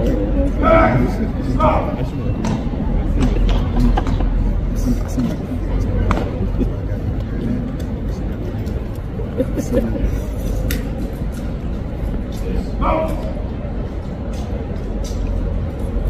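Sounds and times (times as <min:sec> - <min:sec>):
people talking indistinctly: 0:00.0 - 0:15.6.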